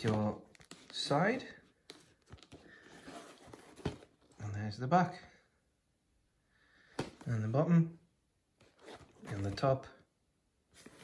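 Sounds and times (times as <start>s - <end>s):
cardboard box handling: 1.9s - 4.4s.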